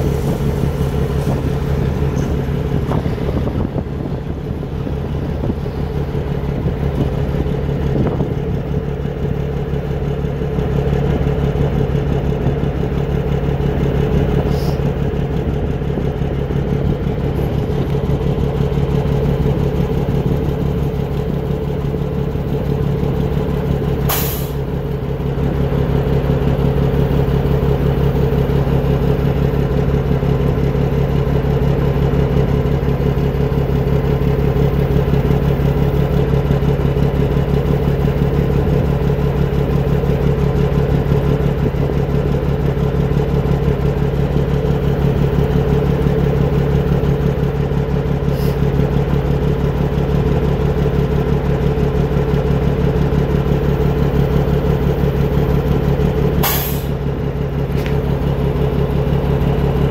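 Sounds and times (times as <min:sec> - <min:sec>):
diesel truck engine idling: 0:00.0 - 0:59.9.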